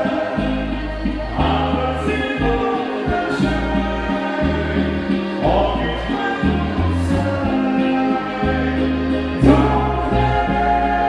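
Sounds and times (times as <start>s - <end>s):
male voices singing in harmony: 0.0s - 11.0s
polka band accompaniment: 0.0s - 11.0s.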